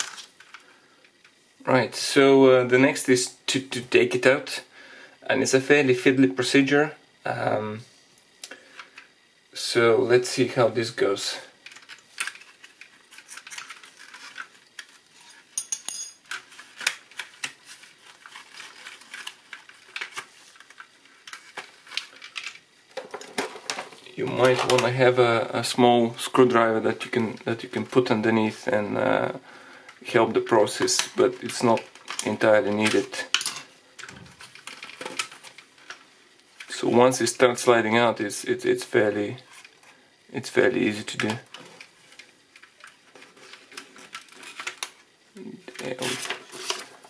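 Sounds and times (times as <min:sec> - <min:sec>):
sheet crinkling: 0:11.7 - 0:15.4, 0:16.3 - 0:22.6.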